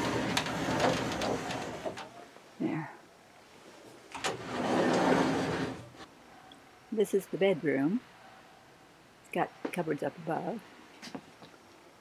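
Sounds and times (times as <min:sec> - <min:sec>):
sliding door click: 0:00.0 - 0:02.2, 0:04.1 - 0:06.1
sliding door rolling rumble: 0:00.0 - 0:02.2, 0:04.1 - 0:06.1.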